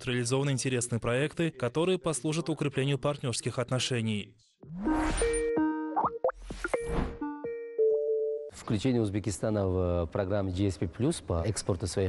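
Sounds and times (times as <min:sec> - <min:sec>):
electronic notes and blips: 0:04.6 - 0:07.6.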